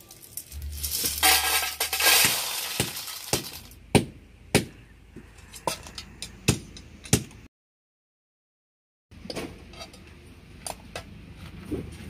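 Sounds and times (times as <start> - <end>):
shells rattling into steel bowl: 0.0 - 3.7.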